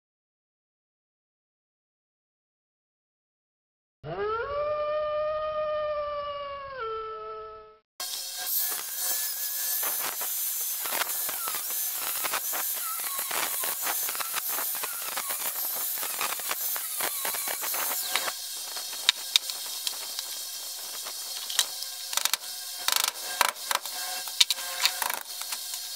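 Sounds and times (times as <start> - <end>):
wolf howling: 4.1 - 7.7
angle grinder cutting metal: 8.0 - 25.9.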